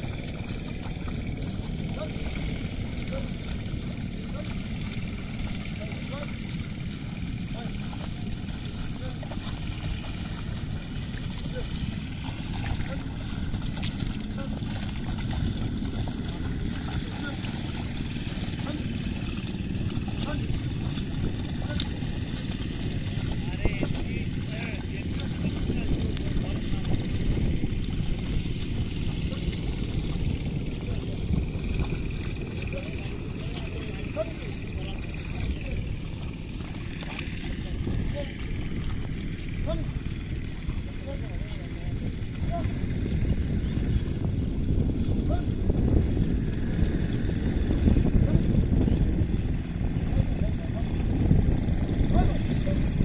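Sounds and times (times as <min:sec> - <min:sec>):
hooves and plough sloshing in mud: 0:00.0 - 0:53.0
wind rumble on microphone: 0:00.0 - 0:53.0.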